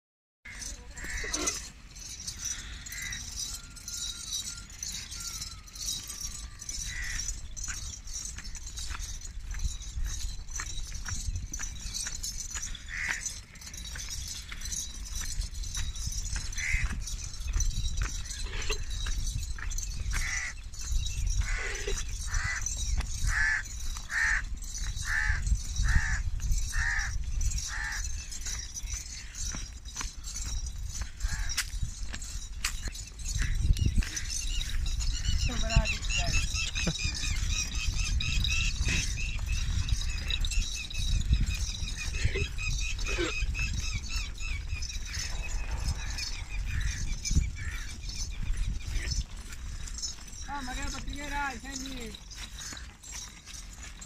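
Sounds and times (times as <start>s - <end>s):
animal calling: 0.5s - 7.4s, 34.1s - 50.8s
goats calling: 0.5s - 11.0s, 11.7s - 54.0s
goat hooves on dirt: 0.5s - 54.0s.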